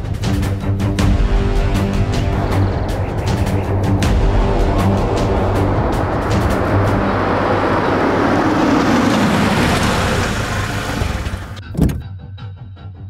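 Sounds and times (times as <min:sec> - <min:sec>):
background music: 0:00.0 - 0:13.0
rushing noise effect: 0:01.0 - 0:11.6
sharp hit: 0:01.0 - 0:11.6.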